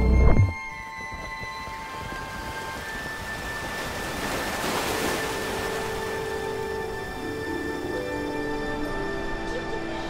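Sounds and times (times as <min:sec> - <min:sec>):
music of sustained tones: 0:00.0 - 0:10.0.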